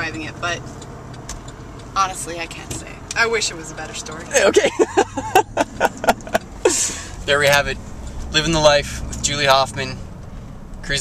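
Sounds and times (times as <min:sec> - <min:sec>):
car cabin road noise: 0:00.0 - 0:11.0
person laughing: 0:04.4 - 0:07.1.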